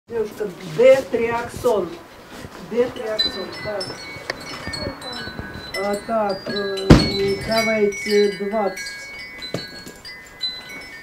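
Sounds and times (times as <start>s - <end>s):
small hard objects tinkling: 2.8s - 11.0s
soft knocks: 6.4s - 7.8s.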